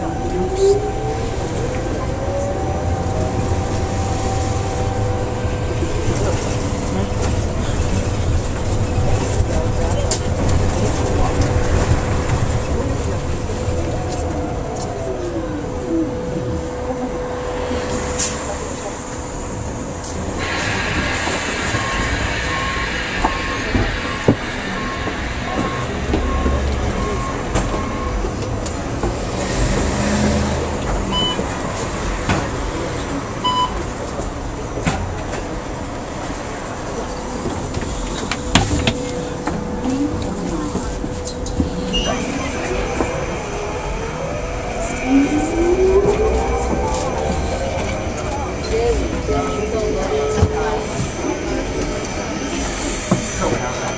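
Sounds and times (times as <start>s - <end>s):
passengers chatting: 0.0s - 53.9s
whine gliding down in pitch: 41.8s - 52.6s.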